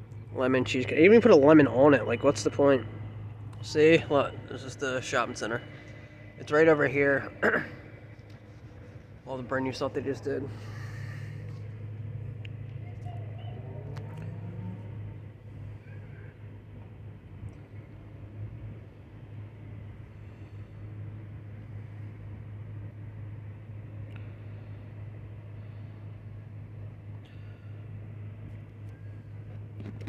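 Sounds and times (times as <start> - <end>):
car engine idling: 0.0 - 30.0.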